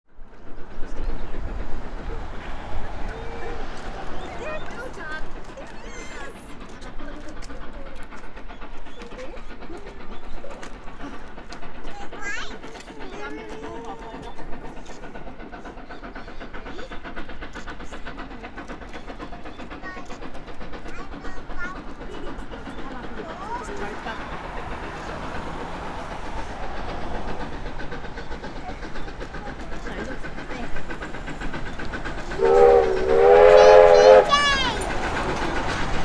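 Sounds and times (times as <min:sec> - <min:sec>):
steam locomotive exhaust beats: 0:00.1 - 0:36.0
steam whistle blast: 0:32.4 - 0:34.4.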